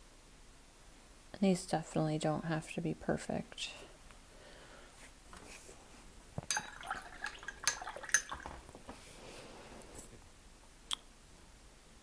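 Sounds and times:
brush clinking in glass jar: 6.5s - 8.5s
small water splashes: 6.5s - 8.6s.

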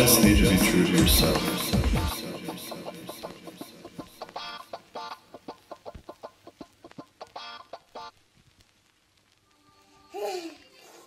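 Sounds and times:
campfire crackling and popping: 0.1s - 10.5s.

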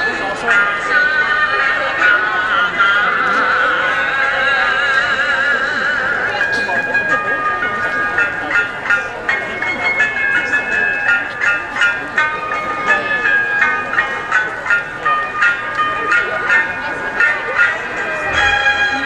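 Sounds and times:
traditional dance music over loudspeaker: 0.0s - 9.5s
sharp percussion strikes: 12.8s - 19.0s.

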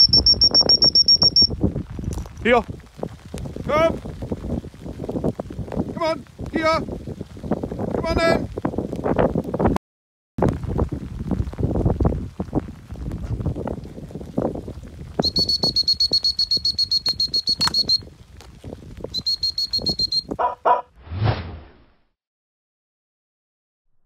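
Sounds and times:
wind buffeting microphone: 0.0s - 9.8s, 10.4s - 20.8s
high trilling whistle blasts: 15.2s - 18.0s, 19.1s - 20.3s.

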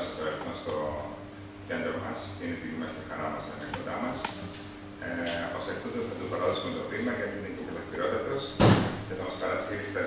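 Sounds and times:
loud thump: 8.6s - 9.0s.

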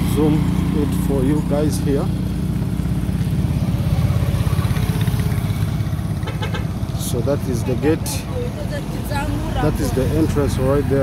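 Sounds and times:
motorcycle engine running: 0.0s - 11.0s
passing street traffic: 0.0s - 11.0s.

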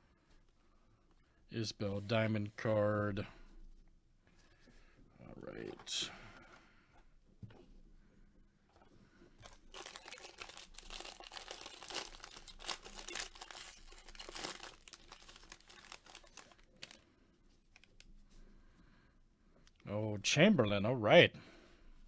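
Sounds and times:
foil wrapper tearing and crinkling: 9.4s - 17.0s
cards rustling: 9.5s - 17.1s.

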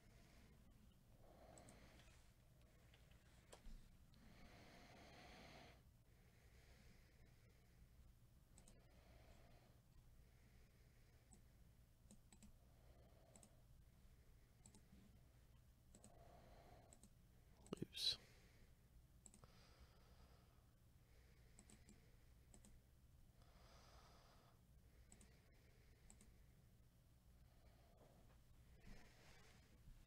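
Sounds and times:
faint clicks: 1.5s - 2.2s, 8.5s - 8.8s, 12.1s - 12.6s, 13.3s - 13.6s, 14.6s - 14.9s, 15.9s - 16.2s, 16.9s - 17.8s, 19.2s - 19.5s, 21.5s - 22.8s, 25.1s - 25.4s, 26.0s - 26.4s.

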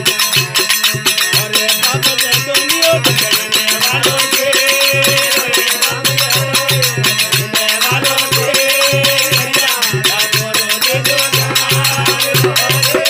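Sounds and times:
jingling percussion: 0.0s - 13.0s.

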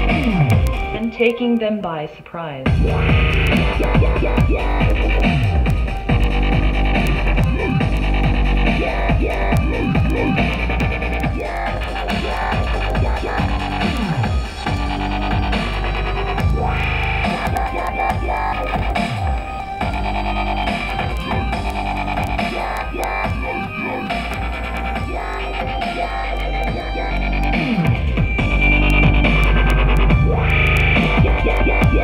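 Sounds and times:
dubstep music with heavy bass: 0.0s - 1.6s, 2.6s - 32.0s.

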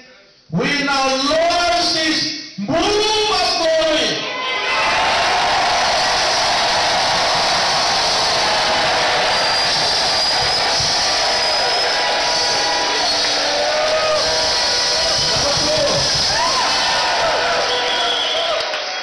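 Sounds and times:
crowd shouting and cheering: 4.2s - 19.0s.

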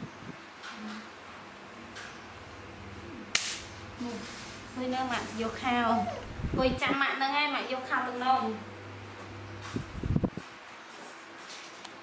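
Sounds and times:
sharp hand clap: 3.3s - 3.6s.

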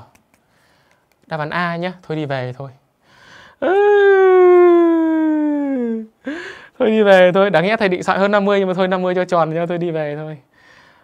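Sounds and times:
man holding long vowel: 3.6s - 6.2s.

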